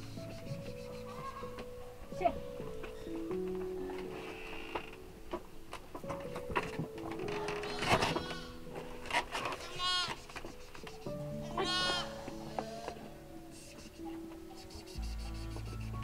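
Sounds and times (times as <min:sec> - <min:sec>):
slow melodic background music: 0:00.0 - 0:16.0
goats and sheep bleating: 0:01.1 - 0:01.6, 0:07.3 - 0:08.6, 0:09.4 - 0:10.4, 0:11.4 - 0:13.3.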